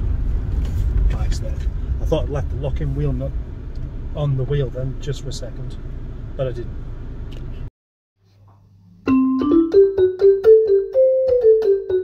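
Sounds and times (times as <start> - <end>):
keyboard playing simple melody: 9.0 - 12.0.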